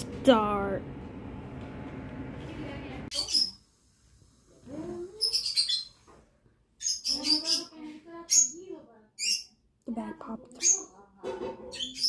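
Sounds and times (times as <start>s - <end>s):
child making vocal noises: 4.7s - 5.2s.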